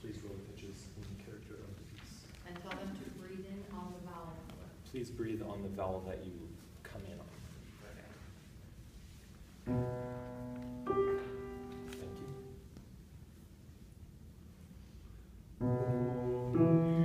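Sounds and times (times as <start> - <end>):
grand piano notes ringing: 9.7 - 12.6, 15.6 - 17.0.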